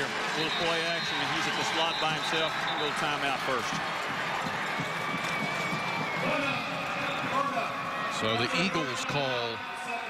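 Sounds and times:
stadium crowd voices: 0:00.0 - 0:10.0.

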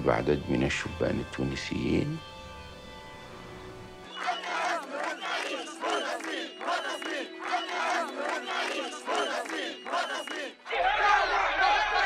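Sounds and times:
crowd chanting in unison: 0:04.1 - 0:12.0
rough crowd noise: 0:04.1 - 0:12.0.

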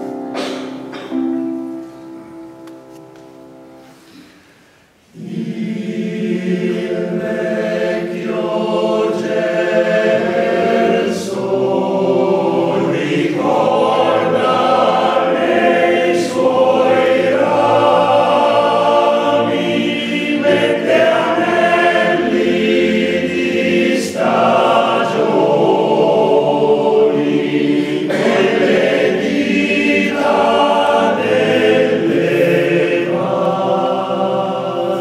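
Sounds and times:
male choir singing in harmony: 0:05.1 - 0:35.0.

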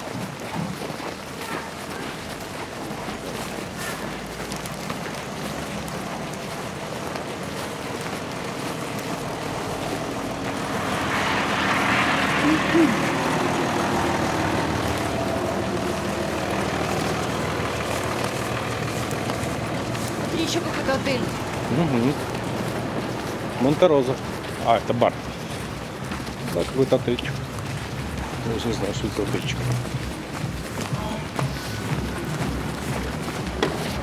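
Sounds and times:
cars driving past on snowy road: 0:00.0 - 0:34.0.

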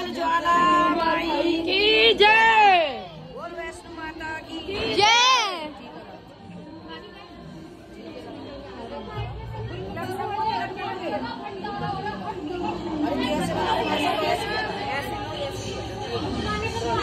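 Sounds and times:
overlapping chatter: 0:00.0 - 0:17.0.

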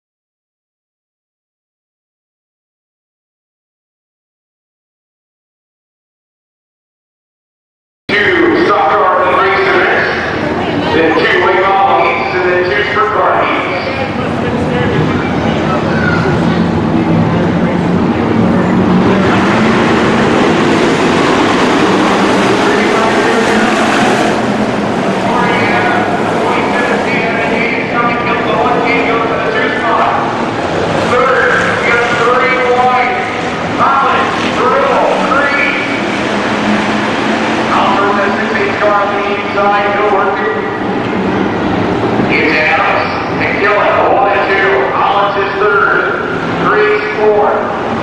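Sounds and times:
announcer calling race: 0:08.1 - 0:16.6, 0:25.0 - 0:36.8, 0:37.6 - 0:41.0, 0:42.2 - 0:47.9
race car engines: 0:08.1 - 0:48.0.

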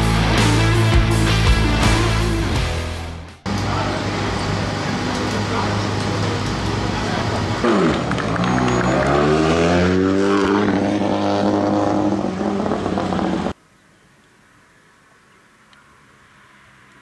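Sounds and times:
rally car engine revving: 0:03.5 - 0:13.6.

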